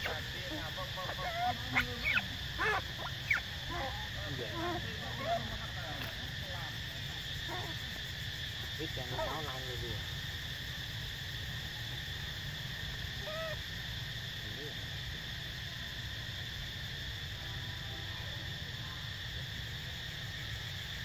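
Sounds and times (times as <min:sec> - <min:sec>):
constant high drone: 0:00.0 - 0:19.0.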